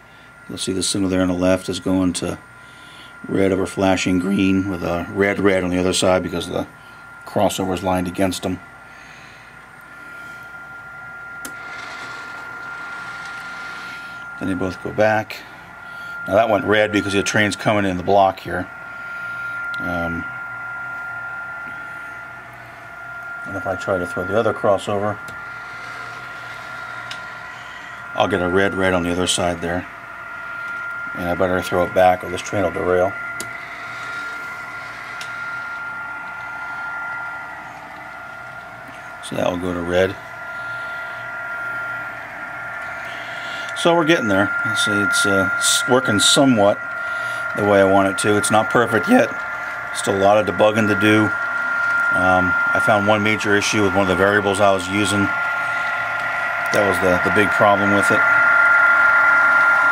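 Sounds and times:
faint high whine: 0.0 - 59.9
model train whirring hum: 0.0 - 59.9
thin high tone: 0.0 - 59.9.

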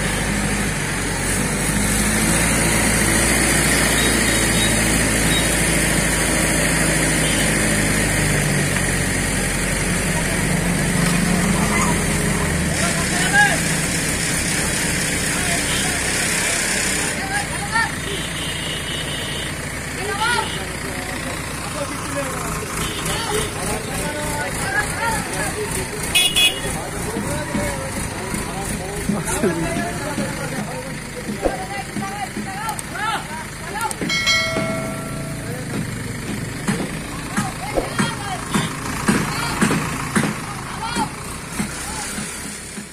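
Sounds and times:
diesel engine running: 0.0 - 42.9.

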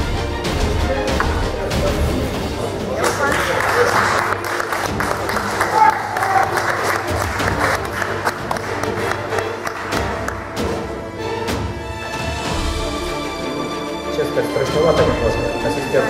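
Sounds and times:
background music: 0.0 - 16.0
audience applauding: 2.9 - 11.0.

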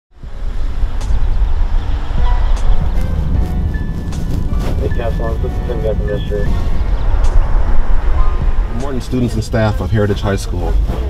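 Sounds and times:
car cabin rumble while driving: 0.2 - 11.0
music: 0.2 - 11.0.

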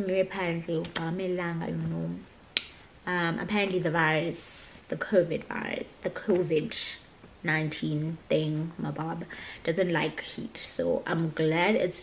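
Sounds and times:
woman's voice: 0.0 - 2.3, 3.0 - 12.0
finger snap: 2.5 - 2.8.

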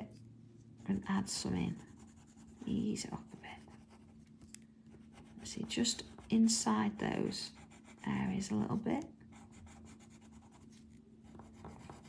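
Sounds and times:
pencil scratching on paper: 0.8 - 4.2, 4.9 - 8.4, 9.3 - 12.0.

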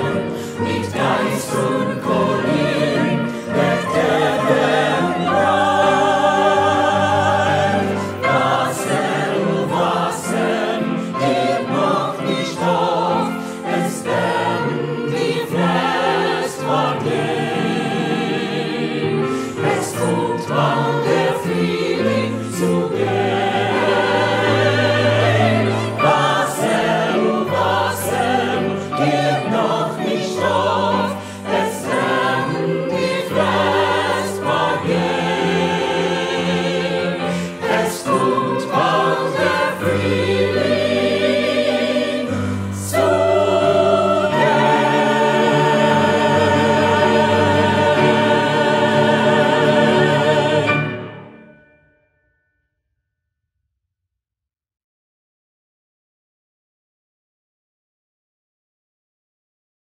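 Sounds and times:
mixed choir singing in harmony: 0.0 - 51.6
piano accompaniment: 0.0 - 51.8.

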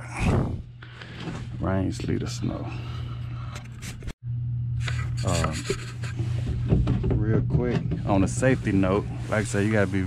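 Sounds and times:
air handler humming: 0.0 - 10.0.

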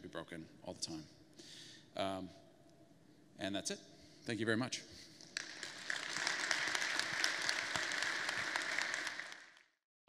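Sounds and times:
audience applauding: 5.3 - 9.8.

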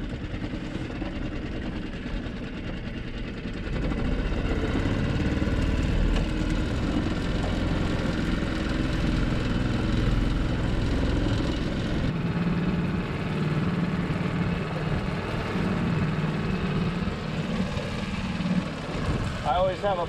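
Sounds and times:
outboard motor running: 0.0 - 20.0.

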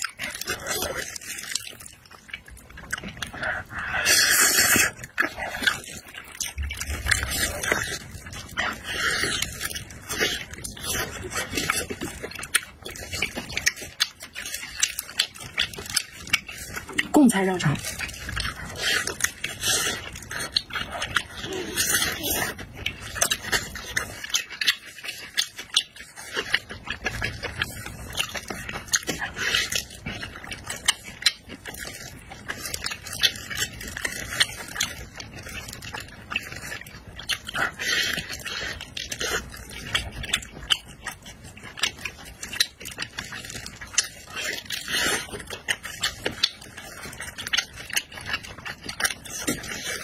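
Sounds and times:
wet sticky eating sounds: 0.0 - 50.0.

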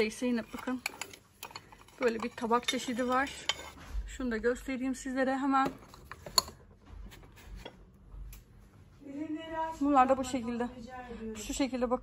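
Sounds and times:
ceramic plates clinking: 0.0 - 3.8, 5.6 - 6.7.

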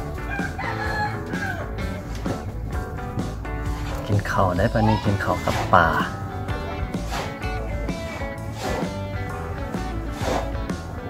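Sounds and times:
plucked-string background music: 0.0 - 11.0
rooster crowing: 0.2 - 2.0, 4.6 - 5.5.

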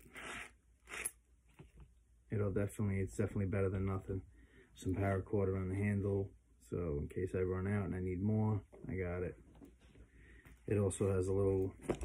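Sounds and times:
machete drawn from sheath: 0.0 - 1.2.

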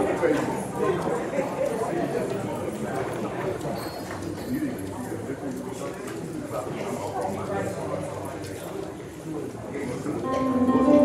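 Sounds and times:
murmur of people talking: 0.0 - 11.0.

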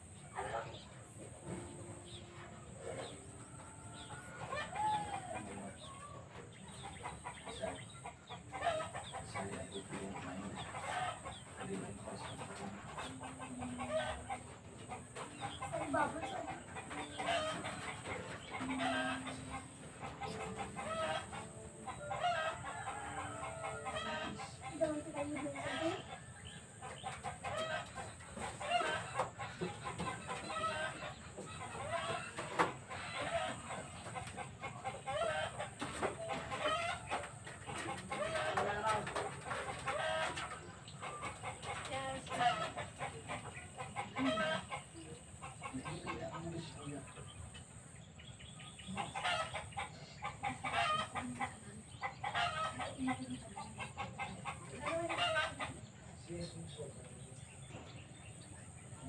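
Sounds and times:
chickens clucking: 0.0 - 59.0.

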